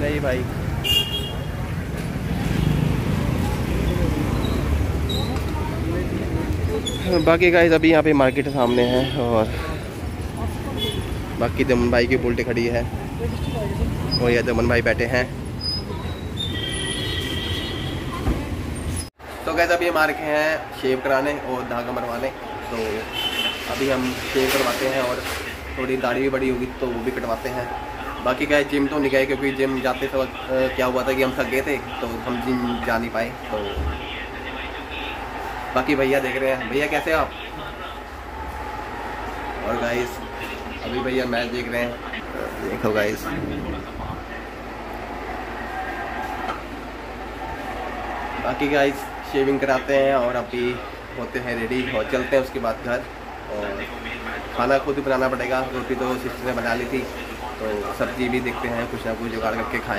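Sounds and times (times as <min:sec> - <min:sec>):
steady background noise: 0:00.0 - 0:59.9
street traffic rumble: 0:00.0 - 0:59.9
faint voices: 0:18.0 - 0:59.9.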